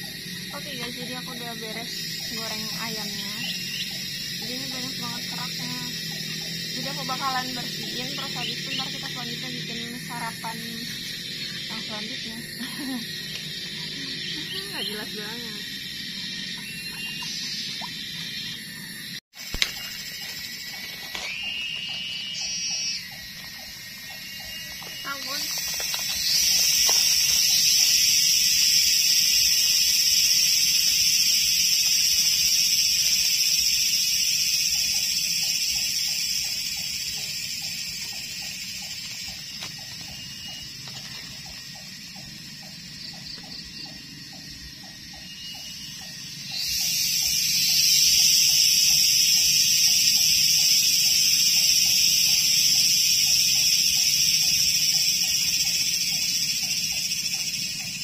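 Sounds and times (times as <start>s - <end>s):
low pulsing animal call: 0.0s - 19.2s
high-pitched insect chorus: 0.0s - 58.0s.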